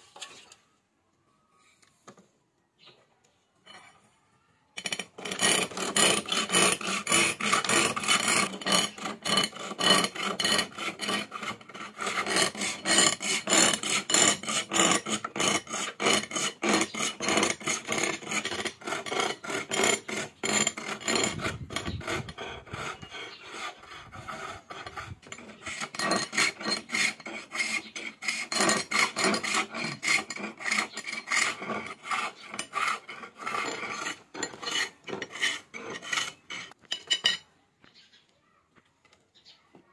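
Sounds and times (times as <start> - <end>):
chisel scraping turning wood: 4.8 - 37.4.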